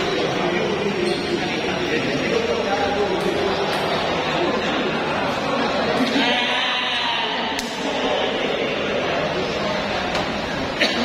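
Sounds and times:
hubbub of voices in a hall: 0.0 - 11.0.

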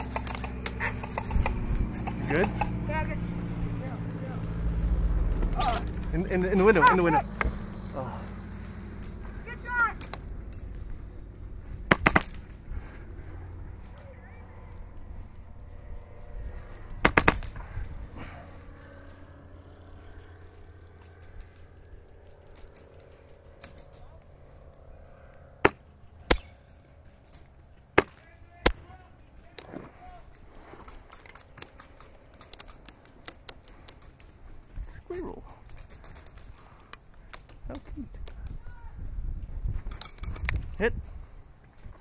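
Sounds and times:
airsoft guns firing: 11.9 - 12.6, 17.0 - 17.6.

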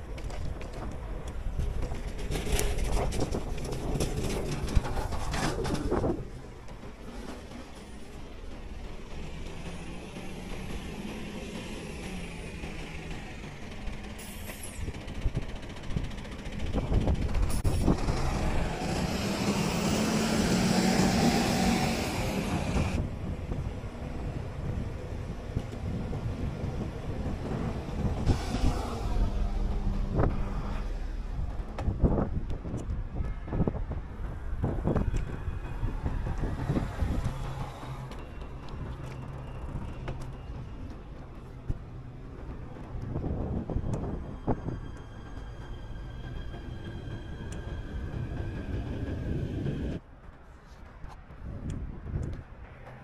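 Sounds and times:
wind rumble on microphone: 0.0 - 7.0, 14.8 - 45.6, 47.4 - 53.0
city bus running: 0.0 - 53.0
tyres on asphalt: 0.0 - 53.0.

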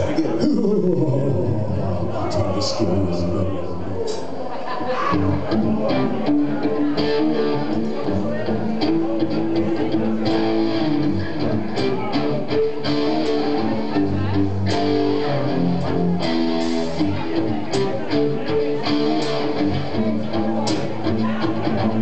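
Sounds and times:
electric guitars playing: 5.1 - 22.0.

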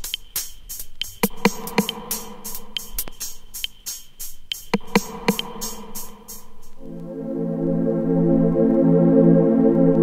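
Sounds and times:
crisp hi-hat strokes: 0.0 - 6.8
buzzy synthesizer tone: 4.9 - 10.0.

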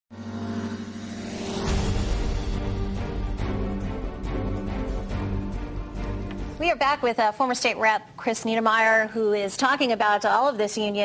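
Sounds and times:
whoosh: 0.1 - 5.2
deep bass hit: 0.1 - 6.7
held synthesizer chord: 0.1 - 6.9.

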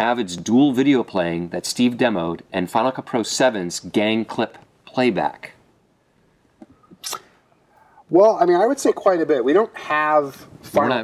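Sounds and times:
person sniffing: 6.9 - 8.1.

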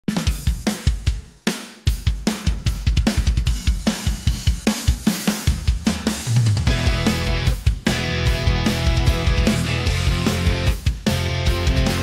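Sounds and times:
rock drum kit playing: 0.0 - 12.0.

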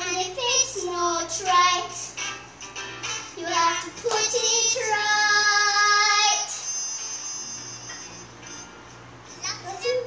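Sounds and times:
quiet instrumental backing music: 0.0 - 10.0.

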